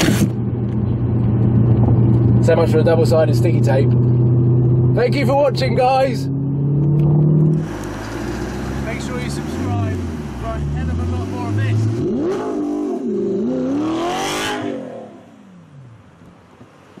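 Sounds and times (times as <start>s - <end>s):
car engine revving: 0.0s - 16.3s
man talking: 2.4s - 3.9s, 5.0s - 6.3s, 8.8s - 12.0s.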